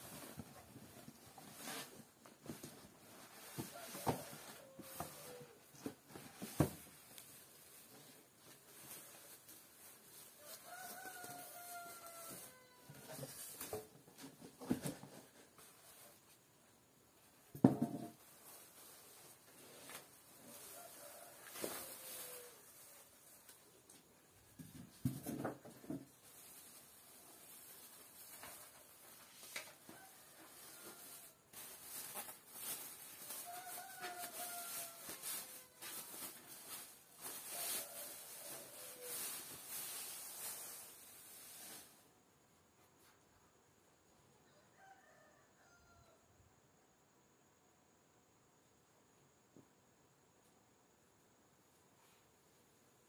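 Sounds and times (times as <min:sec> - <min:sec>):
faint rooster crowing: 0:00.1 - 0:08.2, 0:10.1 - 0:16.3, 0:17.9 - 0:23.4, 0:25.8 - 0:40.7, 0:44.3 - 0:46.5
rooster crowing: 0:03.5 - 0:05.6, 0:10.4 - 0:13.4, 0:20.5 - 0:22.8, 0:33.2 - 0:36.3, 0:44.4 - 0:46.3
plastic bag crinkling: 0:31.5 - 0:41.6.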